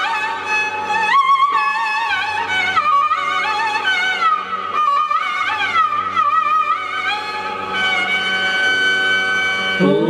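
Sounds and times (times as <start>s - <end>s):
ornamented melody instrument: 4.8s - 10.0s
steady drone: 9.7s - 10.0s.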